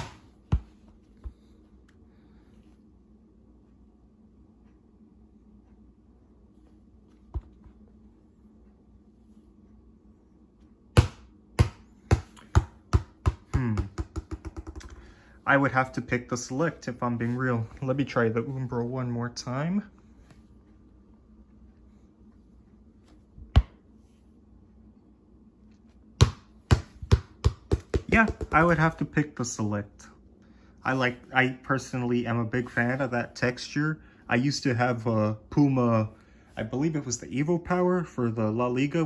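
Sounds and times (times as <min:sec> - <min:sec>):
ball bouncing on wooden floor: 0:00.0 - 0:01.4, 0:11.0 - 0:15.0, 0:23.5 - 0:23.8, 0:26.2 - 0:29.0.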